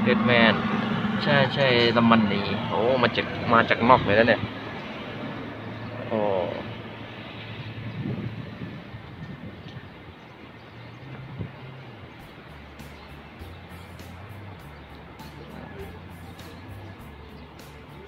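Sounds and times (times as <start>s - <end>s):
outdoor noise: 0.0s - 18.0s
quiet background music: 9.8s - 18.0s
ticking percussion: 12.2s - 18.0s.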